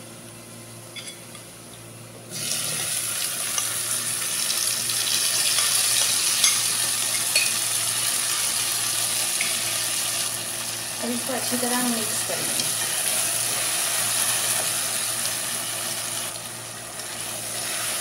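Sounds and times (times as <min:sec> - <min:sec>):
onions frying faintly: 0:01.4 - 0:18.0
loud sizzle with crackles: 0:02.3 - 0:18.0.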